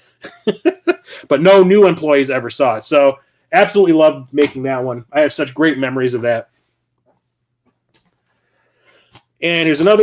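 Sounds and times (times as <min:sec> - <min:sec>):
faint breaths: 0:08.1 - 0:09.4.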